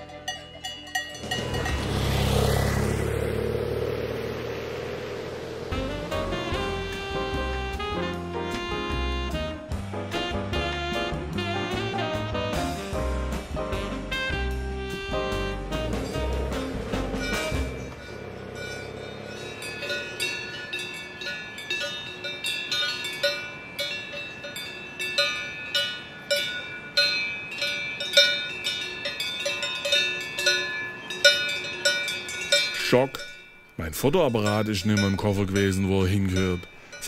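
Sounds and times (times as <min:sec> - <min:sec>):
cowbells clanking: 0:00.0 - 0:02.4, 0:15.7 - 0:37.0
jazz music with saxophone: 0:05.5 - 0:18.1.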